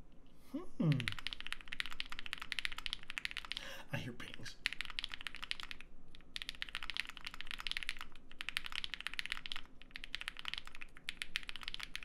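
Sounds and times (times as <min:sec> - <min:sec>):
fast typing on mechanical keyboard: 0:00.9 - 0:12.0.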